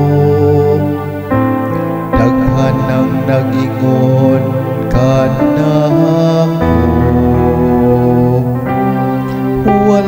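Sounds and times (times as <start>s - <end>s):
held instrumental accompaniment: 0.0s - 10.0s
person singing a psalm: 0.0s - 10.0s.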